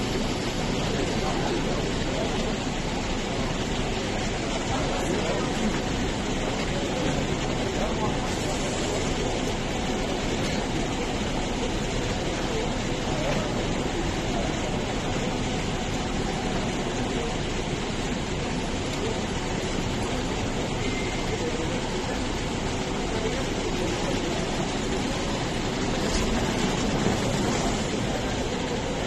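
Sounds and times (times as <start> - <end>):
indistinct voices: 0.0 - 29.0.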